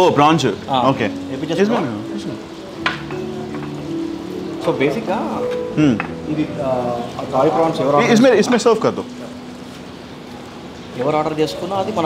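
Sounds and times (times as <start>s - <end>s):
steady hiss: 0.0s - 12.0s
plate clinking on glass table: 2.8s - 3.8s.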